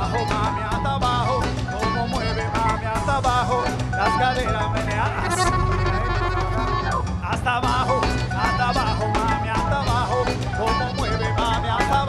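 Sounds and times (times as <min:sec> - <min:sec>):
congas and timbales beat: 0:00.0 - 0:12.0
keyboard melody: 0:00.0 - 0:12.0.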